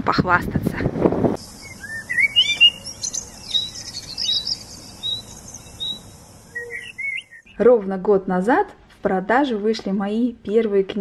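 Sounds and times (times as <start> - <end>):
faint high twittering: 1.4 - 7.5
songbirds chirping and singing: 1.4 - 7.6.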